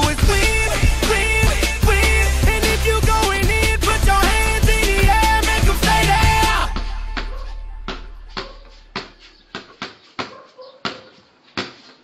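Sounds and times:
basketball bouncing on hard floor: 7.2s - 12.0s.

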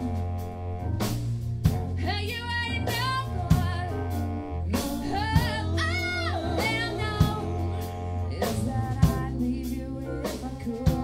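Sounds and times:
bass line: 0.0s - 11.0s
drum kit: 0.0s - 11.0s
woman singing blues: 2.0s - 11.0s.

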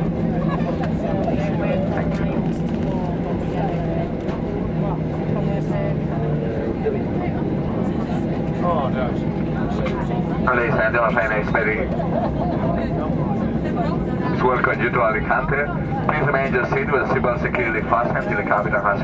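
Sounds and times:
jet engine and airflow rumble: 0.0s - 19.0s
passengers chatting: 0.0s - 19.0s.

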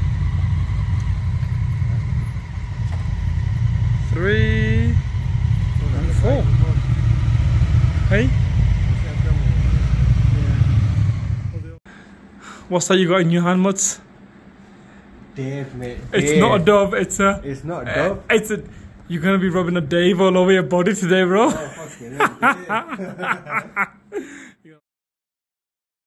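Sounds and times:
motorcycle engines rumbling: 0.0s - 11.8s.

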